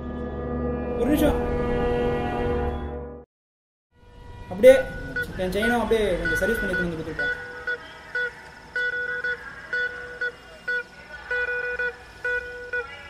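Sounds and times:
horn-like tone honking: 1.5s - 3.2s, 4.0s - 13.0s.

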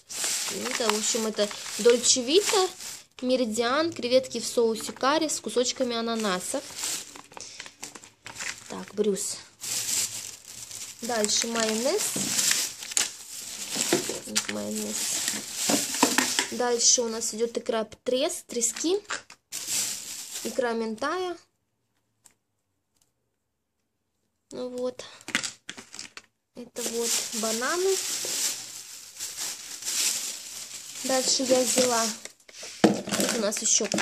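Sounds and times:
plastic bags rustling: 0.0s - 17.4s, 18.7s - 21.0s, 25.3s - 34.0s.

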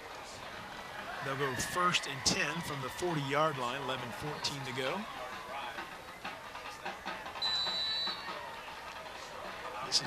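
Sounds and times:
murmur of football crowd: 0.0s - 10.0s
referee's whistle blast: 7.4s - 8.4s.

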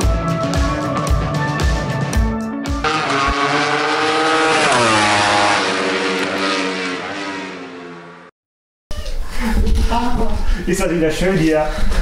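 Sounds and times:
rock music with drums: 0.0s - 3.2s
motorcycle engine revving: 2.8s - 8.3s.

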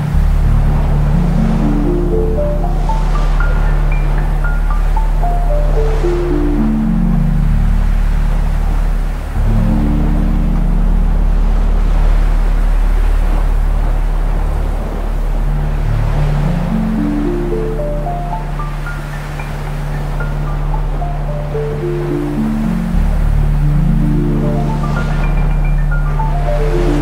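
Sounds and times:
dark ambient music drone: 0.0s - 27.0s
ocean waves hissing: 0.0s - 27.0s.

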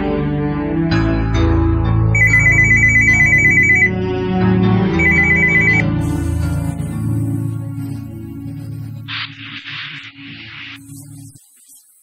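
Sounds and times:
background music: 0.0s - 11.4s
telephone ringing electronic trill: 2.2s - 4.0s, 5.0s - 6.4s.

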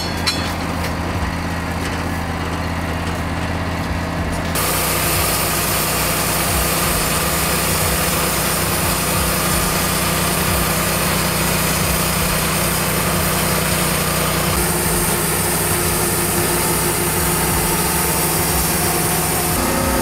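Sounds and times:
sawmill engine running: 0.0s - 20.0s.

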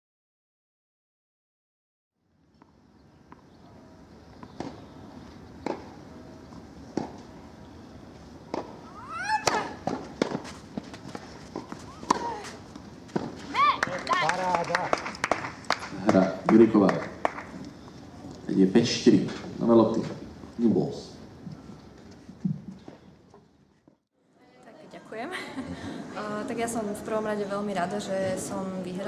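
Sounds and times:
tennis balls hit by rackets: 4.4s - 7.4s, 8.4s - 17.7s.

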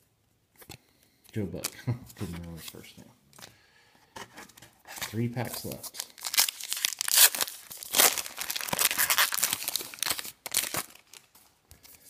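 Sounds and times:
card pack wrapper tearing and crinkling: 4.9s - 11.4s.

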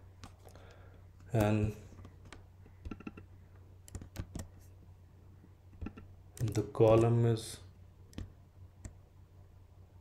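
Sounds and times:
faint low hum: 0.0s - 10.0s
computer keyboard keystrokes: 2.2s - 4.5s.

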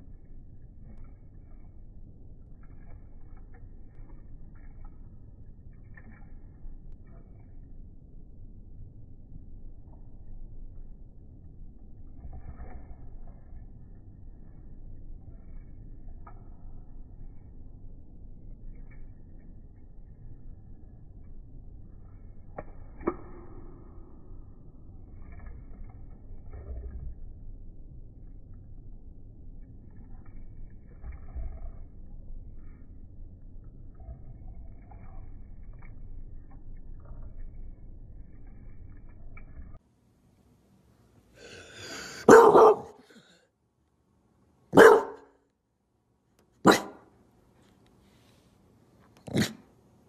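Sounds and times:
low background rumble: 0.0s - 50.0s
dog barking: 42.2s - 43.2s, 44.7s - 45.3s, 46.6s - 47.0s.

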